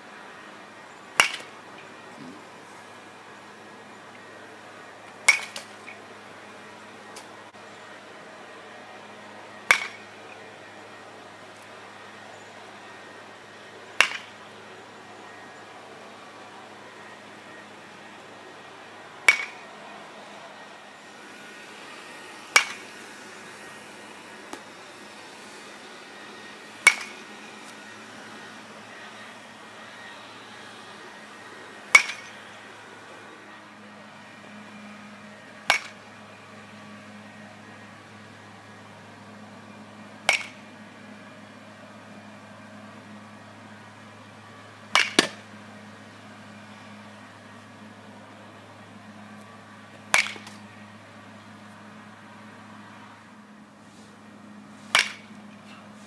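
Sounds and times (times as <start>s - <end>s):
faint steady hum: 0.0s - 56.0s
metal bat hitting balls: 1.1s - 1.6s, 5.2s - 6.0s, 9.6s - 10.1s, 14.0s - 14.4s, 19.2s - 19.6s, 22.5s - 22.9s, 26.8s - 27.3s, 31.9s - 32.4s, 35.6s - 36.0s, 40.2s - 40.6s, 44.9s - 45.5s, 50.0s - 50.7s, 54.9s - 55.9s.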